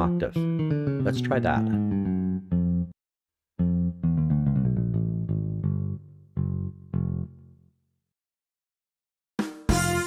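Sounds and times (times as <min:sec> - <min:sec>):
synthesizer bass line: 0:00.1 - 0:03.0, 0:03.6 - 0:07.4.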